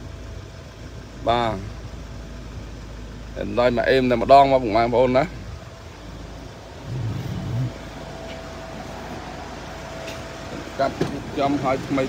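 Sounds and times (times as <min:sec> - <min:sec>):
van engine idling: 0:00.0 - 0:12.0.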